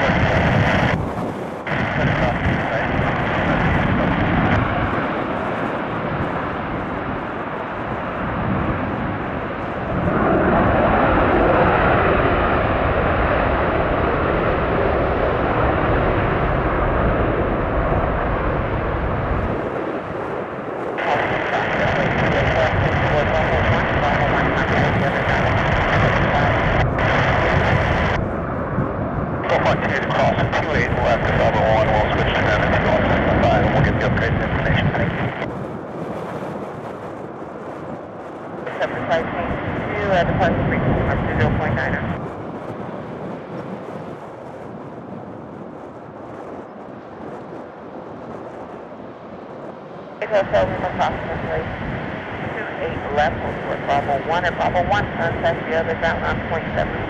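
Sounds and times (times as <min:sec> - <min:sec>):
jet engine roar: 0:00.0 - 0:57.0.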